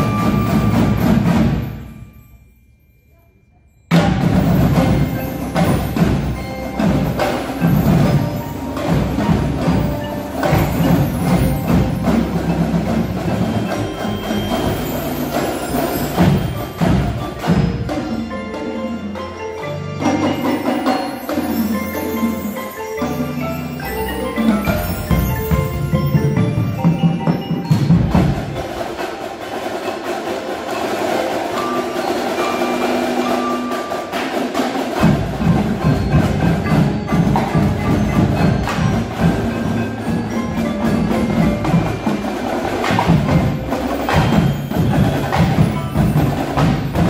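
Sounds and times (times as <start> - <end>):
drumline drums: 0.0 - 2.2, 3.9 - 47.0
marimbas and mallet keyboards: 0.0 - 47.0.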